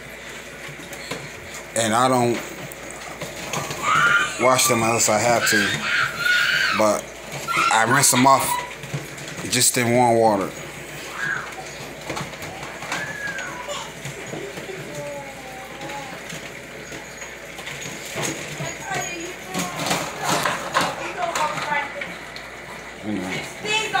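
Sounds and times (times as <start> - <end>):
scrabbling and rattling against crate: 2.2 - 22.1
puppies whining and yipping: 3.5 - 9.0, 10.8 - 20.5.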